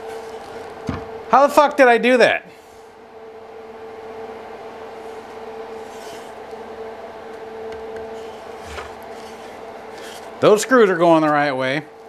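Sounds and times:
steady background hum: 0.0s - 12.0s.

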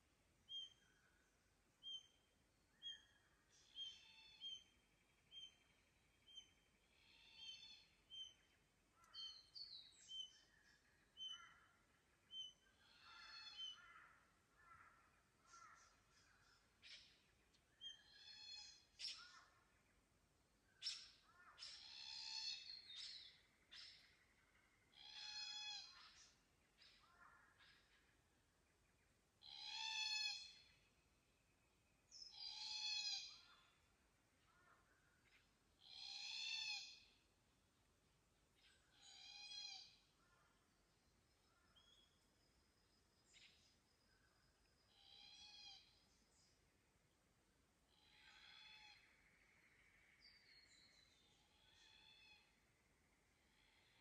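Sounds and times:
forest birds calling: 0.4s - 37.3s, 38.4s - 47.2s, 47.8s - 54.0s.

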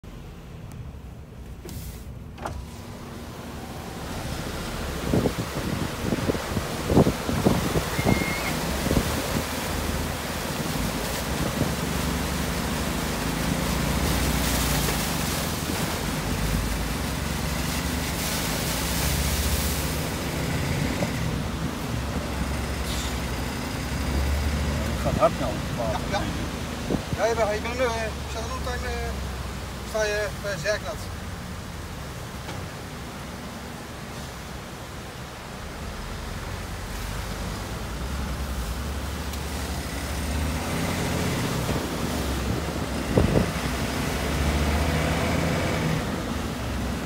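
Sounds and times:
diesel truck engine running: 0.0s - 29.8s
water rushing over truck: 0.0s - 47.0s.

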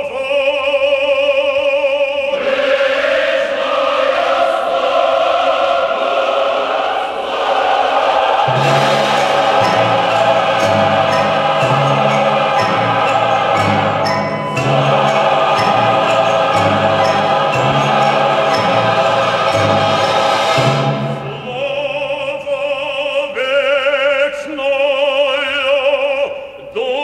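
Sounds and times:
choir singing with orchestra: 0.0s - 27.0s.

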